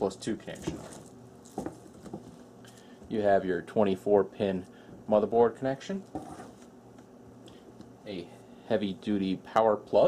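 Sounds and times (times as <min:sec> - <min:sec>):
cables rustling: 0:00.4 - 0:03.1.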